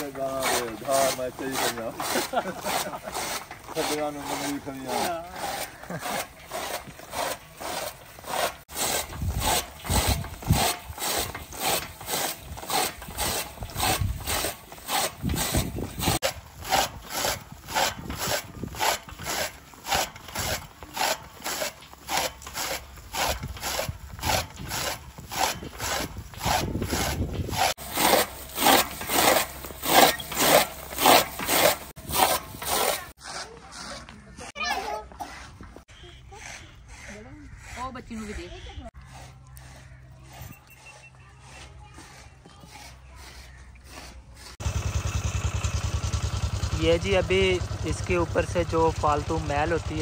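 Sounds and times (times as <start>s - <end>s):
chaff cutter chopping fodder: 0.0s - 34.6s, 36.4s - 50.0s.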